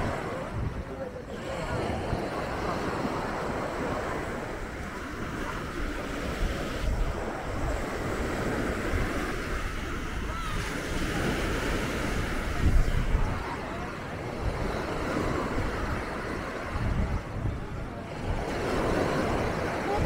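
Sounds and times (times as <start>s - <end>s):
small waves washing ashore: 0.0s - 20.0s
wind buffeting microphone: 0.0s - 20.0s.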